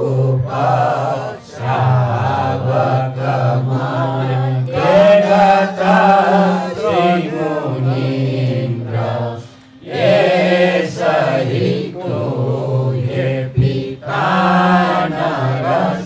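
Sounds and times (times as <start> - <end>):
men chanting together: 0.0 - 16.0.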